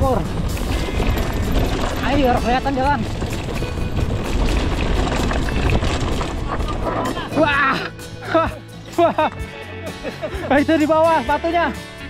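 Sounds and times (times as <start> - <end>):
wind buffeting microphone: 0.0 - 8.1
tyres crunching on dirt: 0.0 - 8.4.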